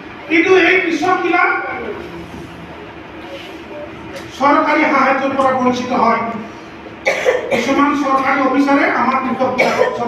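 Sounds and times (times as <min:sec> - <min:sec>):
person talking: 0:00.2 - 0:06.5.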